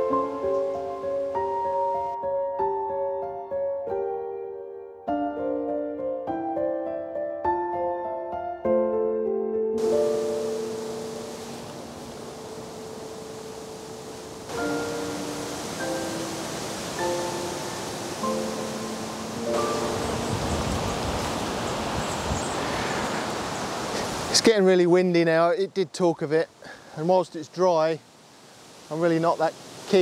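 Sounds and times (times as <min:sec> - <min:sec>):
slow keyboard music: 0:00.0 - 0:22.3
wind in the trees: 0:09.8 - 0:24.5, 0:28.0 - 0:30.0.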